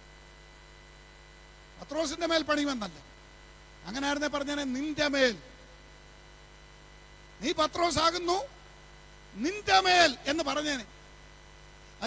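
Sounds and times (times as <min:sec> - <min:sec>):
electrical hum from speakers: 0:00.0 - 0:12.0
man speaking through microphone: 0:01.8 - 0:03.1, 0:03.8 - 0:05.5, 0:07.4 - 0:08.6, 0:09.3 - 0:10.9.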